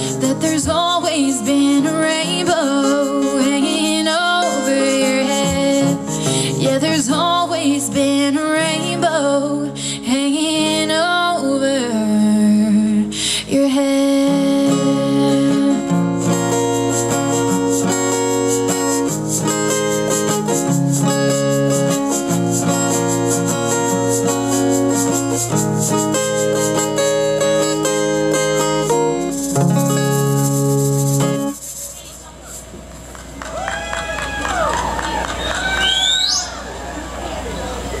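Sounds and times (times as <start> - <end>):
acoustic guitar strumming chords: 0.0 - 31.7
crowd voices: 31.5 - 38.0
person whooping: 33.5 - 36.8.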